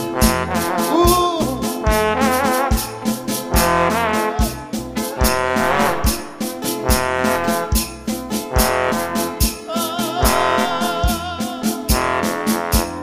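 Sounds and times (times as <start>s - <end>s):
horns playing with vibrato: 0.0s - 13.0s
steady drum beat: 0.0s - 13.0s.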